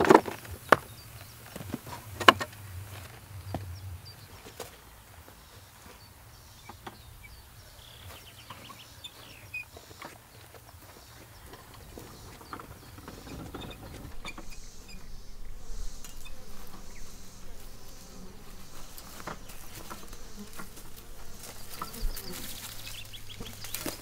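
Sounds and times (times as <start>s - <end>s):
wheelbarrow rolling and knocking: 0.0s - 3.7s, 8.4s - 15.2s, 18.4s - 24.0s
footsteps: 0.0s - 6.2s, 8.0s - 24.0s
insects buzzing: 0.0s - 24.0s.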